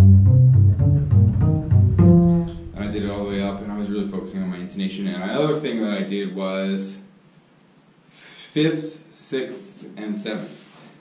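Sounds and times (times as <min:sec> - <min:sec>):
upright bass plucked note: 0:00.0 - 0:04.5
low sustained bass string: 0:00.0 - 0:04.8
man talking: 0:02.2 - 0:07.1, 0:08.2 - 0:10.8.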